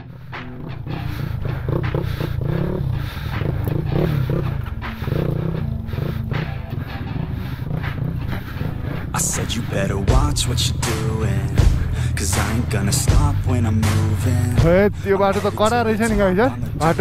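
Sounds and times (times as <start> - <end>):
dirt bike engine revving: 0.0 - 17.0.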